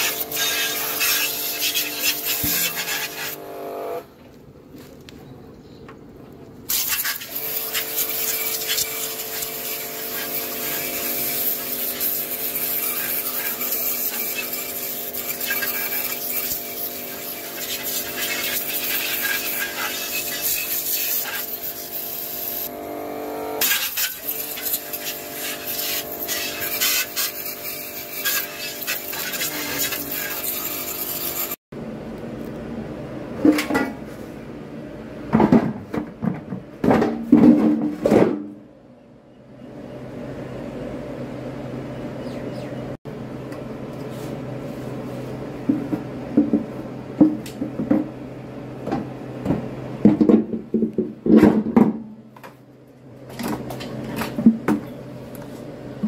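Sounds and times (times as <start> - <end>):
water jet spraying metal drum: 0.0 - 3.4, 6.7 - 22.8, 23.6 - 31.6
pressure washer motor hum: 0.0 - 4.1, 6.7 - 31.6
loud knocks and clatter: 35.3 - 38.6, 48.8 - 52.1.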